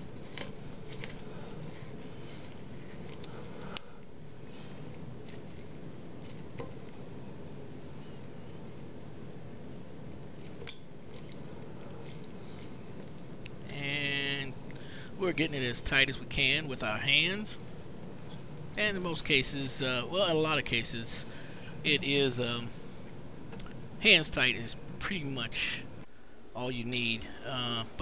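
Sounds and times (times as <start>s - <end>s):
low background noise: 0.0s - 28.0s.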